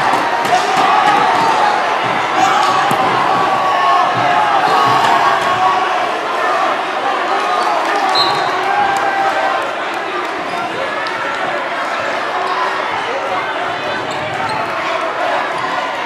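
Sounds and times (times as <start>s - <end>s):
crowd voices echoing: 0.0s - 16.0s.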